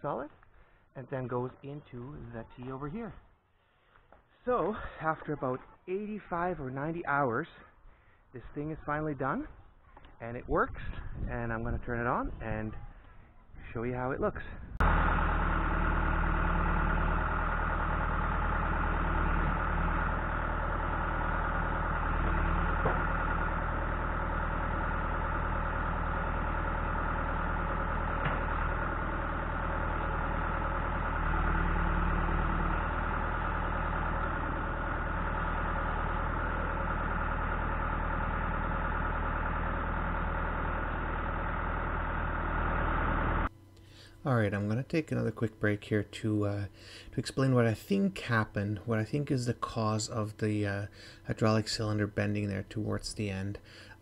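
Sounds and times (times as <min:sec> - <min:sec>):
diesel engine running: 0:14.8 - 0:54.0.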